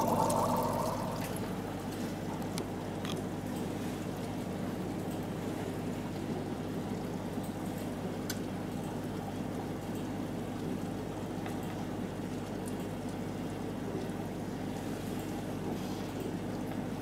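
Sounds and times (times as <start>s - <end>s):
aquarium water bubbling: 0.0s - 17.0s.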